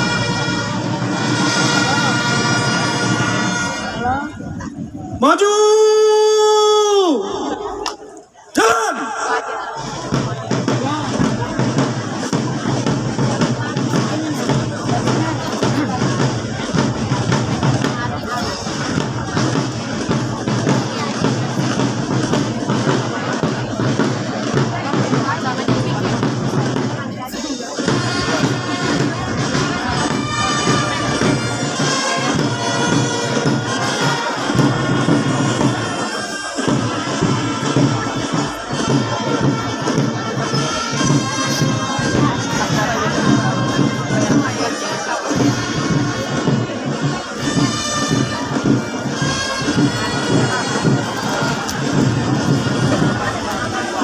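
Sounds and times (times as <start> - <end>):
brass chords: 0.0 - 4.6, 8.9 - 54.0
marching drums: 0.0 - 54.0.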